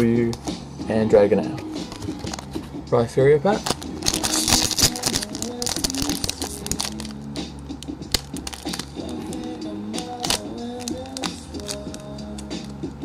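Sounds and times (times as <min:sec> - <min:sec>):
background music with steady beat: 0:00.0 - 0:13.0
foil wrapper crinkling: 0:03.6 - 0:07.2, 0:08.1 - 0:12.1.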